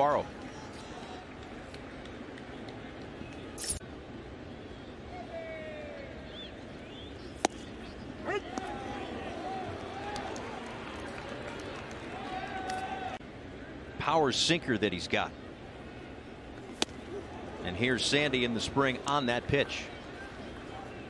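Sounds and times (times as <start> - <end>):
ballpark ambience: 0.0 - 21.0.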